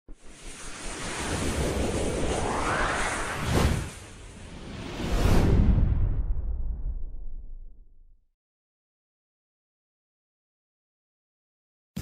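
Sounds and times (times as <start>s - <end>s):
rushing whoosh: 0.2s - 7.0s
low rumble: 1.4s - 8.2s.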